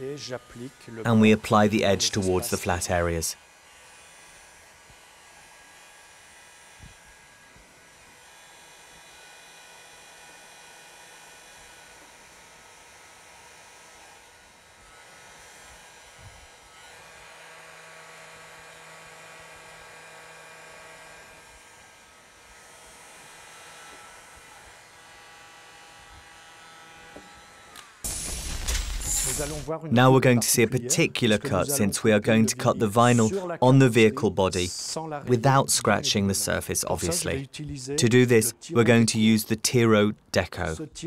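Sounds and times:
electric motor hum: 0:00.0 - 0:29.7.

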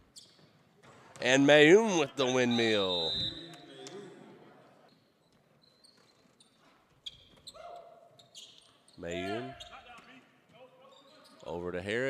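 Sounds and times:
sneakers squeaking on hardwood: 0:00.0 - 0:01.2, 0:05.2 - 0:11.6.

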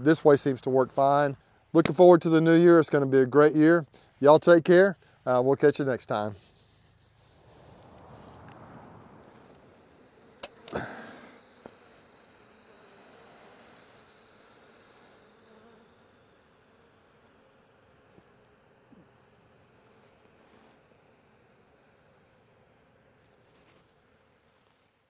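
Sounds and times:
bees buzzing faintly: 0:05.0 - 0:25.0.

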